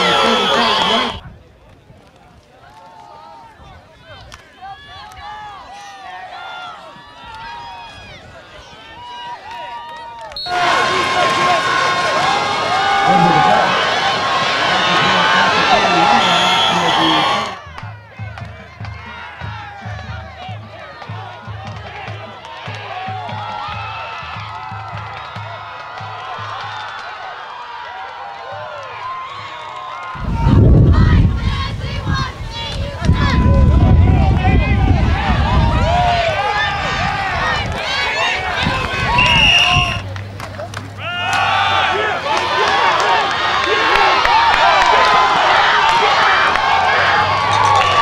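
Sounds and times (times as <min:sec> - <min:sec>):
crowd cheering and yelling: 0:00.0 - 0:48.0
crowd talking and shouting: 0:00.0 - 0:48.0.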